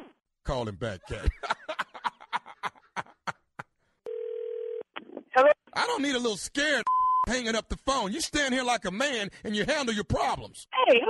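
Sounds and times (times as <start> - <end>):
telephone tone: 4.1 - 4.9.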